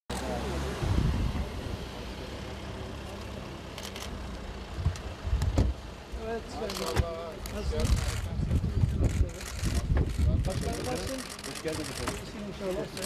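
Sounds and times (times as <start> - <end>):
car engine and road rumble: 0.1 - 13.0.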